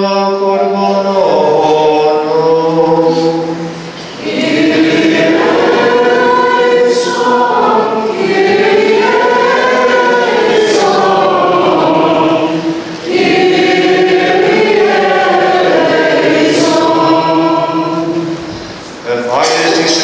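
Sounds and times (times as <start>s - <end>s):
choir singing a chant: 0.0s - 18.6s.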